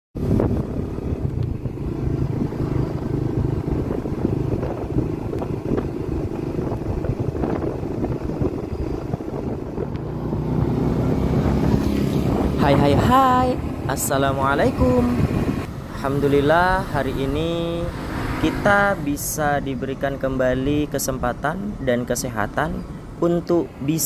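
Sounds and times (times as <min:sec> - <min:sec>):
road noise: 0:00.2 - 0:24.0
vehicle engine rumble: 0:00.2 - 0:24.0.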